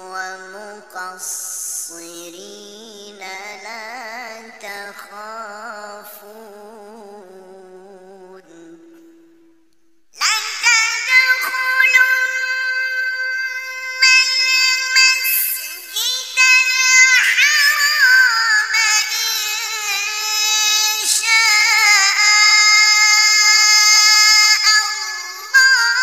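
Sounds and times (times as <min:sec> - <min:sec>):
solo voice reciting melodically: 0:00.0 - 0:26.0.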